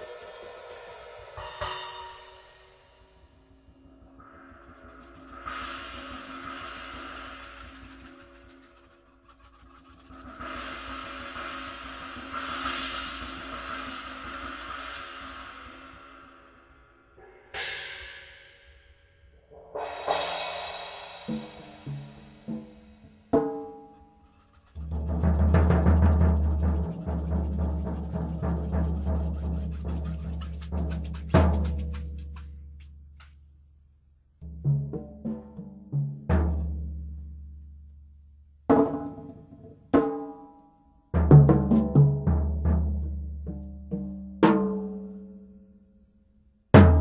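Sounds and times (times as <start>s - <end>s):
cymbal strikes ringing: 0.0s - 3.4s
mallet rolls on cymbals: 0.0s - 16.6s, 17.2s - 32.6s
low mallet roll on floor tom: 19.6s - 32.8s.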